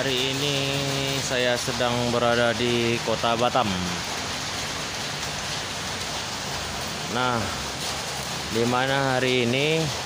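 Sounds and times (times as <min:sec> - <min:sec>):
rain on pavement: 0:00.0 - 0:10.0.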